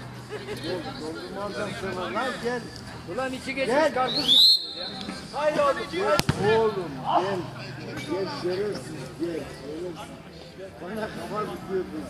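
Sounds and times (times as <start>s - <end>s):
football kicked with a thud: 6.2s - 6.6s.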